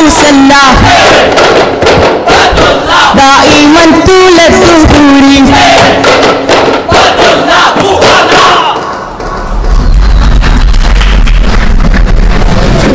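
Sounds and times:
group shouting: 0.0 - 9.1
steady low rumble: 9.2 - 12.9.

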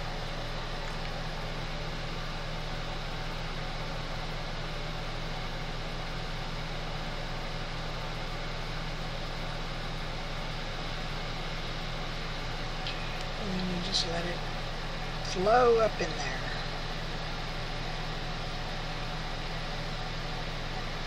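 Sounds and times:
background hum and hiss: 0.0 - 21.0.

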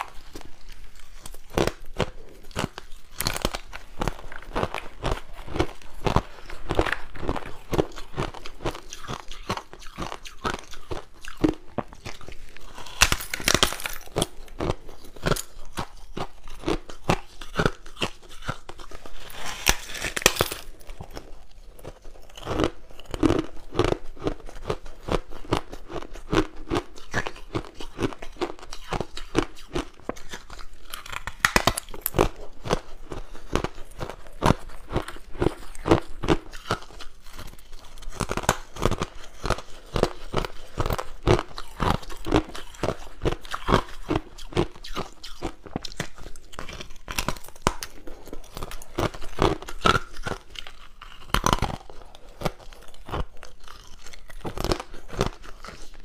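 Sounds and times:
crushed ice being chewed: 0.0 - 56.0.

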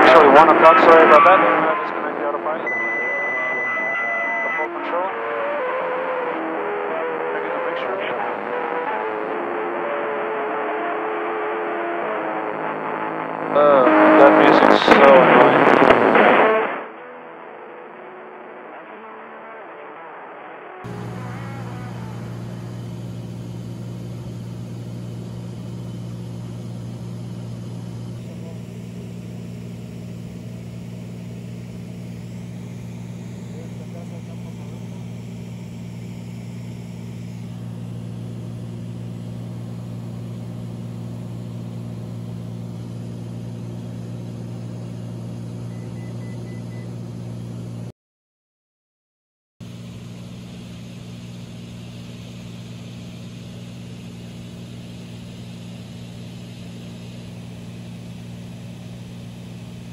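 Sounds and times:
airplane engine and propeller drone: 0.0 - 9.3, 20.8 - 47.9, 49.6 - 59.9.

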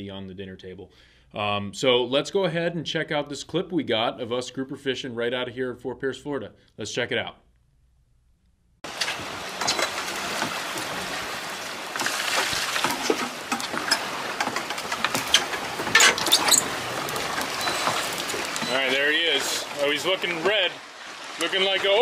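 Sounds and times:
water noise: 8.8 - 22.0
wind: 8.8 - 22.0
clicks and knocks: 12.6 - 18.7.

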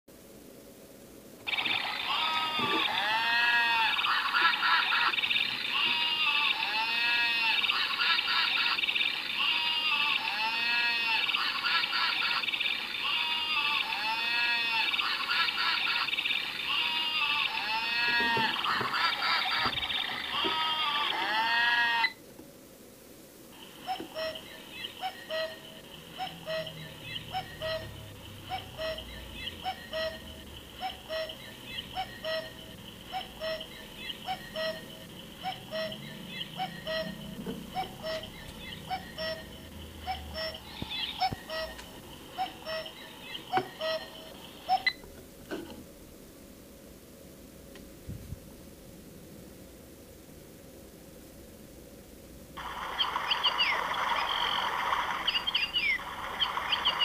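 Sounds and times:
alarm clock beeping: 24.0 - 24.5, 25.1 - 43.0, 43.6 - 44.9
alarm clock warbling: 26.2 - 33.7, 34.3 - 41.8, 42.4 - 43.0.

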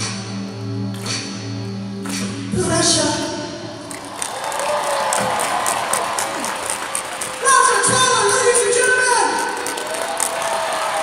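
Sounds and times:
crowd cheering and clapping: 3.8 - 11.0.

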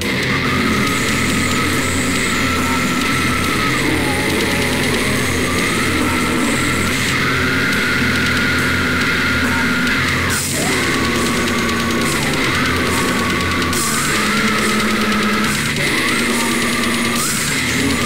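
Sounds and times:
distorted low guitar: 0.0 - 18.0
held high tone: 0.2 - 17.3.

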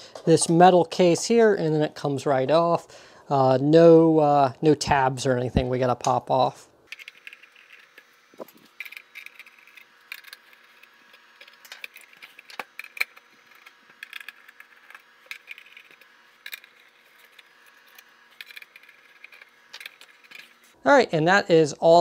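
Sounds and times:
screws clinking: 6.9 - 20.7.

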